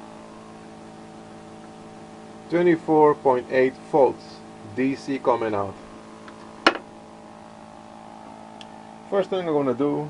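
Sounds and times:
motor generator humming: 0:00.0 - 0:10.0.

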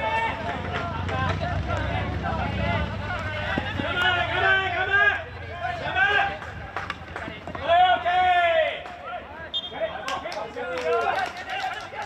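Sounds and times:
players shouting: 0:00.0 - 0:12.0
hockey sticks striking ball: 0:06.7 - 0:07.7.

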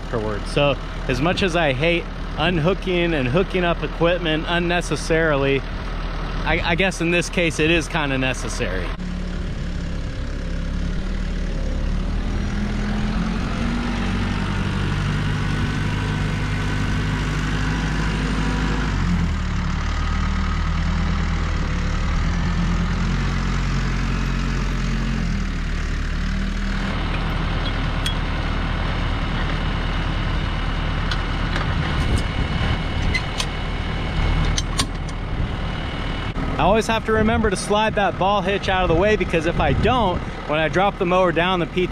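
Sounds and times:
tractor diesel engine running: 0:00.0 - 0:41.9.

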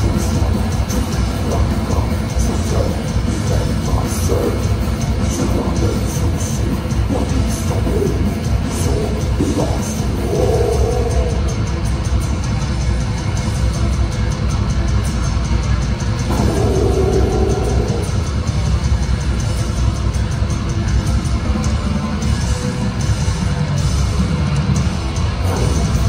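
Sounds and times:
death metal band playing: 0:00.0 - 0:26.0.

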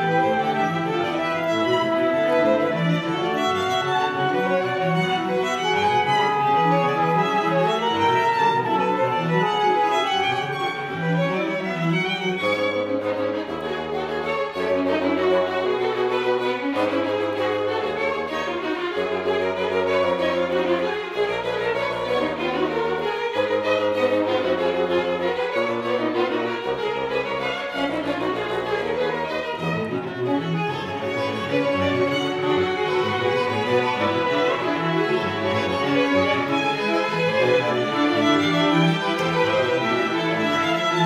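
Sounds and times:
bassoon solo: 0:00.0 - 0:11.4
chamber orchestra playing: 0:00.0 - 0:41.0
low cello and bass line: 0:00.0 - 0:41.0
string section sustained chords: 0:00.0 - 0:41.0.

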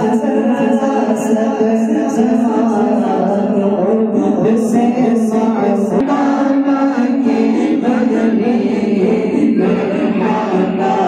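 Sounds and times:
men chanting together: 0:00.0 - 0:11.0.

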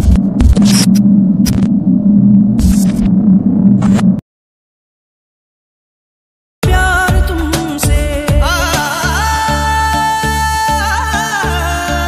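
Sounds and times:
loud electrical buzz: 0:00.0 - 0:04.2
static crackle bursts: 0:00.0 - 0:04.2.

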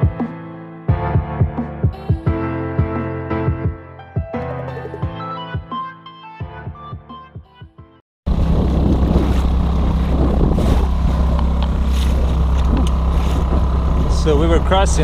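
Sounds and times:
background music: 0:00.0 - 0:08.0
boat motor running: 0:08.3 - 0:15.0.

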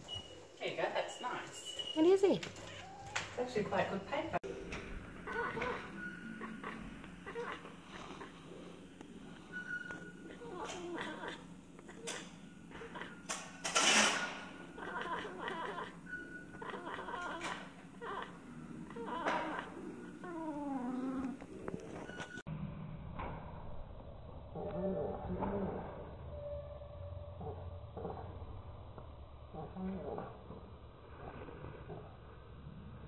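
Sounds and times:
cat chattering and chirping: 0:05.3 - 0:08.4, 0:10.2 - 0:13.3, 0:14.7 - 0:18.3.

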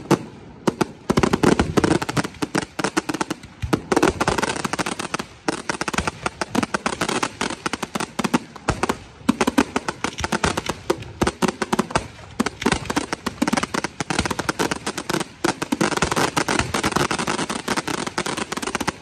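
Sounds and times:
fireworks cracking and banging: 0:00.0 - 0:19.0.

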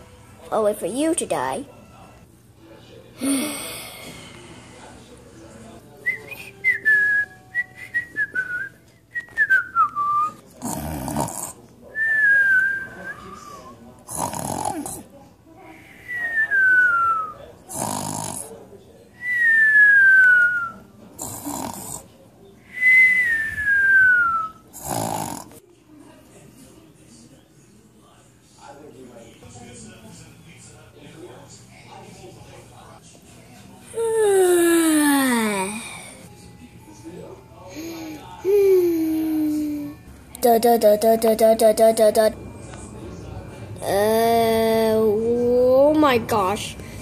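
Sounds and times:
person imitating snoring: 0:10.6 - 0:11.6, 0:14.1 - 0:15.0, 0:17.7 - 0:18.5, 0:21.2 - 0:22.0, 0:24.8 - 0:25.5.

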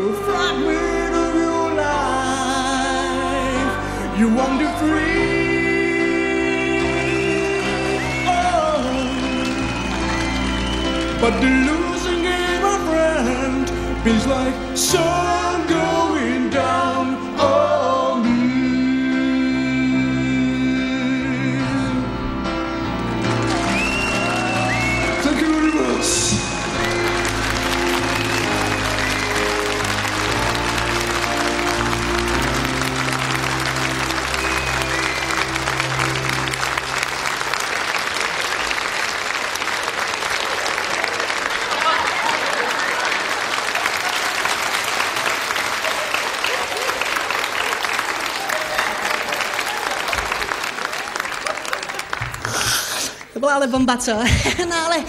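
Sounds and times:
person singing: 0:00.0 - 0:22.6
studio audience applauding: 0:06.0 - 0:13.6, 0:22.9 - 0:53.4.

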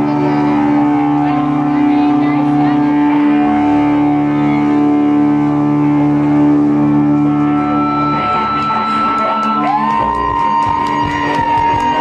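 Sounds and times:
electric guitars droning chord: 0:00.0 - 0:12.0
high feedback tone: 0:00.0 - 0:12.0.

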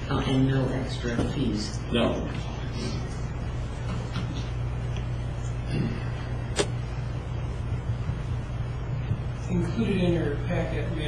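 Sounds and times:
low room hum: 0:00.0 - 0:11.0.

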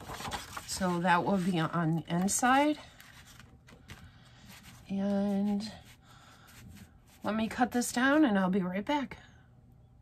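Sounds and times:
paper rustling: 0:00.0 - 0:07.2.

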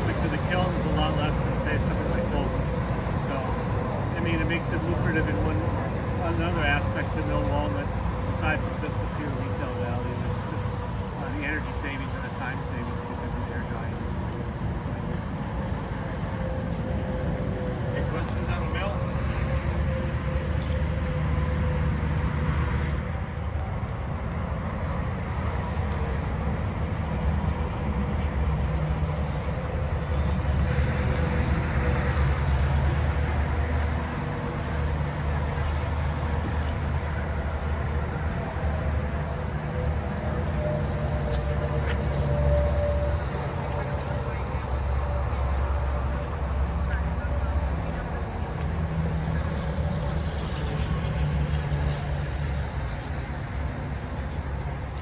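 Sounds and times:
engine running steadily: 0:00.0 - 0:55.0.

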